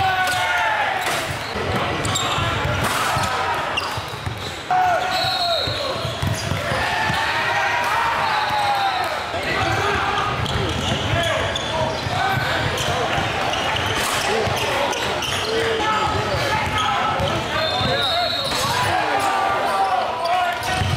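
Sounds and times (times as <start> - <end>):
basketball bouncing on court: 5.6 - 7.3, 9.6 - 18.7, 20.6 - 20.9.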